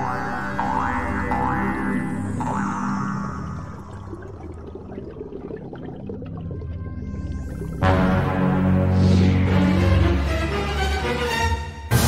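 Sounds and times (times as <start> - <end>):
soft bubbling and crackling: 0.0 - 8.3
low underwater drone: 0.0 - 9.9.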